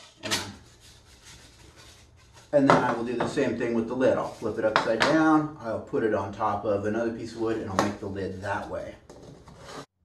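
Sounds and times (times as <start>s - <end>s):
wood-on-wood scrape: 7.6s - 9.9s.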